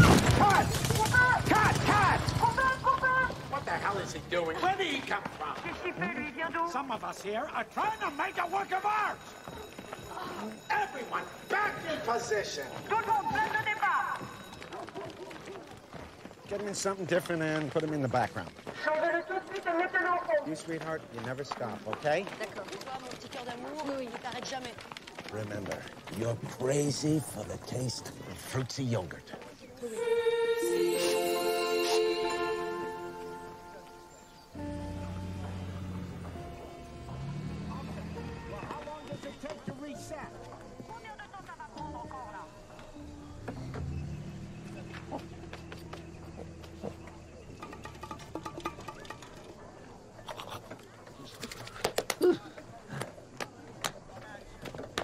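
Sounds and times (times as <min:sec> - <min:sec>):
footsteps running on dirt: 0:00.0 - 0:27.3, 0:38.2 - 0:47.6
indistinct voices talking: 0:00.3 - 0:17.0, 0:22.4 - 0:51.2
soft background music: 0:29.9 - 0:41.0.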